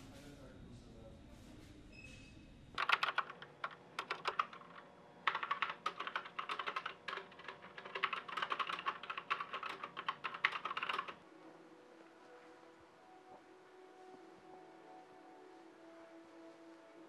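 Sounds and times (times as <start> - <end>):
fast keyboard typing: 2.8 - 11.2.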